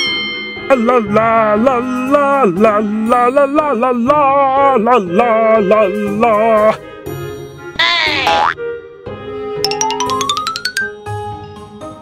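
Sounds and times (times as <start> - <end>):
light background music: 0.0 - 12.0
cartoon downward sweep effect: 7.8 - 8.6.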